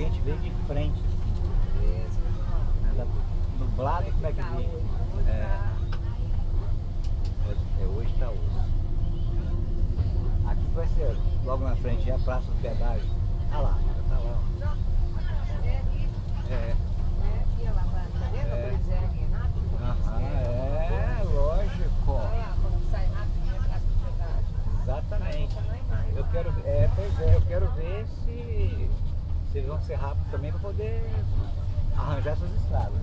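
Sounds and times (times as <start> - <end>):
bus engine rumble: 0.0 - 33.0.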